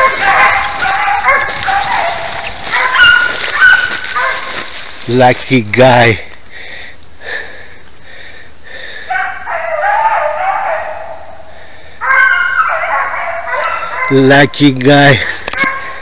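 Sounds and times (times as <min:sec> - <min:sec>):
hounds baying: 0:00.0 - 0:04.9, 0:09.0 - 0:14.5, 0:15.2 - 0:16.0.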